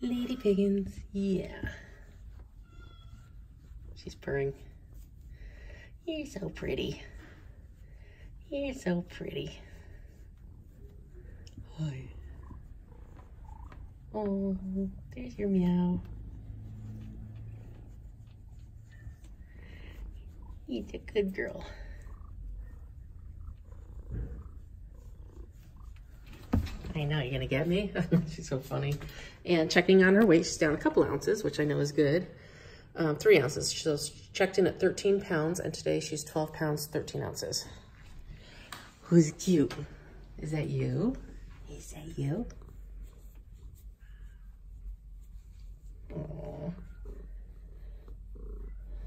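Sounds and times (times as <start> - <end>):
cat purring: 0.0 - 28.6, 41.1 - 49.0.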